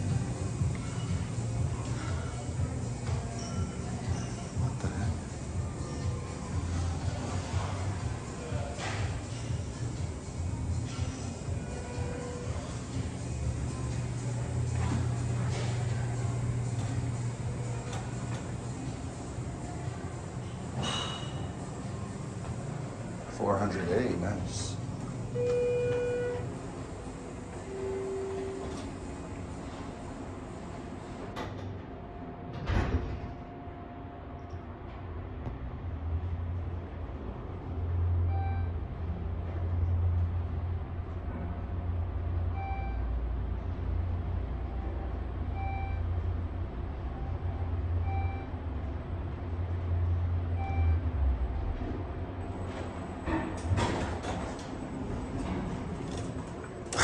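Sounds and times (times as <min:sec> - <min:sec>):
elevator low hum: 0:00.0 - 0:57.0
elevator floor beep: 0:10.3 - 0:20.2, 0:25.0 - 0:31.1, 0:38.2 - 0:38.8, 0:42.5 - 0:43.2, 0:44.8 - 0:46.3, 0:47.1 - 0:48.8, 0:50.1 - 0:51.2
elevator door sliding open: 0:10.6 - 0:23.2, 0:24.7 - 0:33.6, 0:52.5 - 0:57.0
elevator button beep: 0:25.3 - 0:26.6, 0:27.5 - 0:29.1, 0:38.2 - 0:38.7, 0:42.6 - 0:43.0, 0:45.6 - 0:46.1, 0:48.0 - 0:48.5, 0:50.5 - 0:51.1
elevator door closing with knock: 0:32.5 - 0:33.4.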